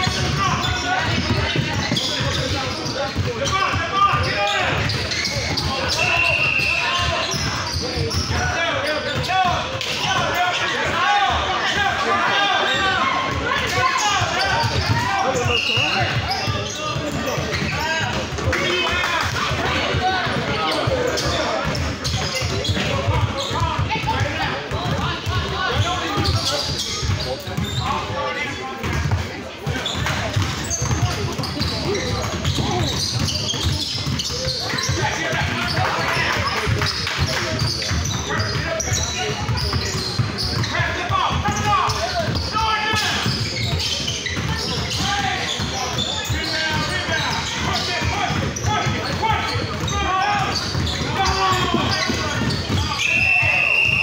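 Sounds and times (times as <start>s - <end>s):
basketball bouncing on gym court: 0.0s - 10.2s, 13.3s - 27.9s, 28.8s - 53.6s
players and spectators shouting: 0.0s - 54.0s.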